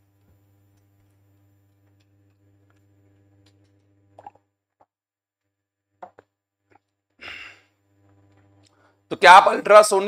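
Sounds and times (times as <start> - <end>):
man sighing: 7.2 - 7.7.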